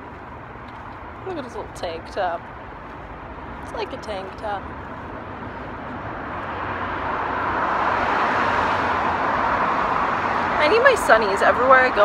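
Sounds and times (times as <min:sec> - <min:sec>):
motor vehicle approaching: 0:00.0 - 0:12.0
street traffic: 0:00.0 - 0:12.0.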